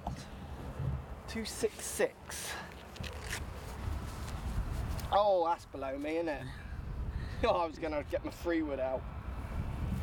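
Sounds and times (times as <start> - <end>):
footsteps through long grass: 2.9 - 5.2
wind rumbling on microphone: 3.0 - 5.2, 6.4 - 10.0.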